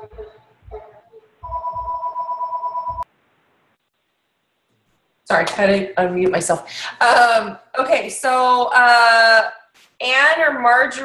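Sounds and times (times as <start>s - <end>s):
electronic telephone ring: 1.4s - 3.0s.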